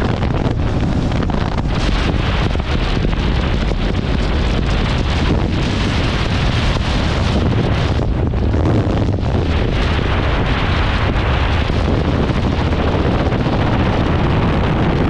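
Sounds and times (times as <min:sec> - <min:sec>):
motorcycle running: 0:00.0 - 0:15.0
wind rushing over microphone: 0:00.0 - 0:15.0.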